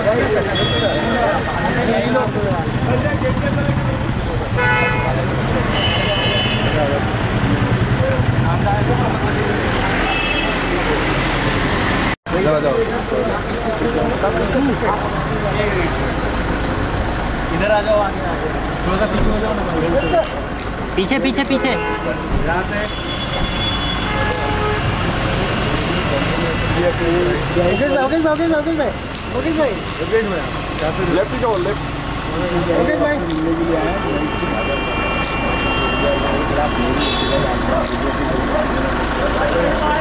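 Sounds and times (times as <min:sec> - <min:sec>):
people's voices: 0:00.0 - 0:40.0.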